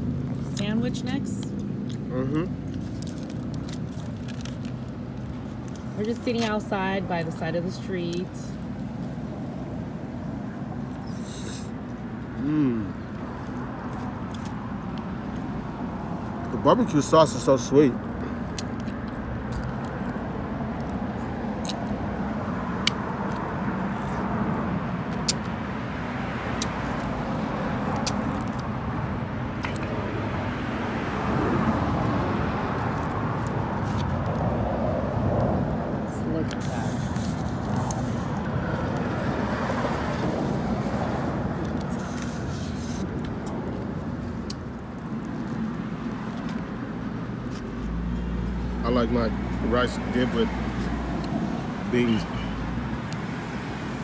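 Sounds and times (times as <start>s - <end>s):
cars driving past: 0.0s - 54.0s.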